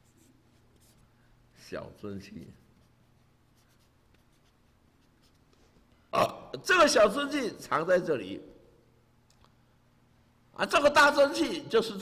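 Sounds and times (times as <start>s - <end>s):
man speaking: 6.1s - 8.6s, 10.6s - 12.0s.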